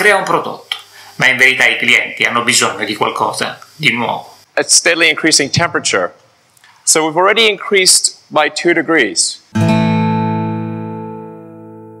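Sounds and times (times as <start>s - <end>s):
strummed guitar chord ringing: 9.6s - 12.0s.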